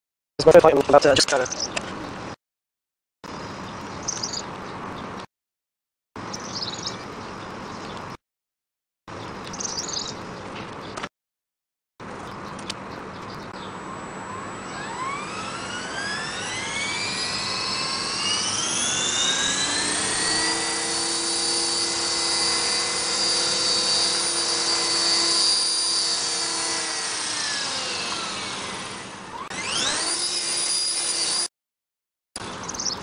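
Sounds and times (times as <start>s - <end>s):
model helicopter motor whining: 13.8s - 31.5s.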